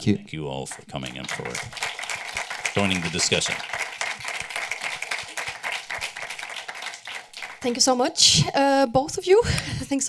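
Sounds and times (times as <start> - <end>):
audience applauding: 0.7 - 8.3.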